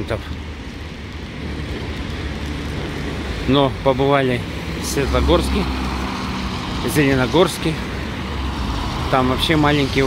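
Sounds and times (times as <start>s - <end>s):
traffic on wet road: 0.0s - 10.0s.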